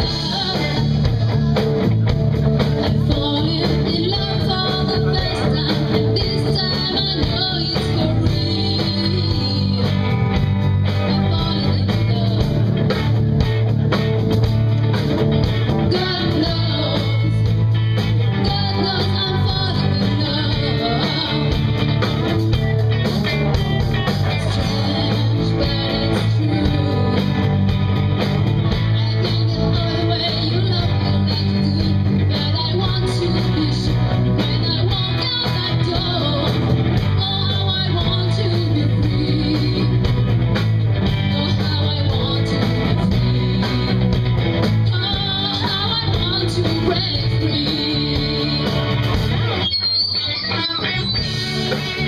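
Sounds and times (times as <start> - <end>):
woman singing: 0.0 - 13.0, 15.6 - 22.4, 24.2 - 28.0, 28.7 - 40.4, 41.0 - 49.2
bass guitar: 0.0 - 52.0
drum kit: 0.0 - 52.0
electric guitars: 0.0 - 52.0.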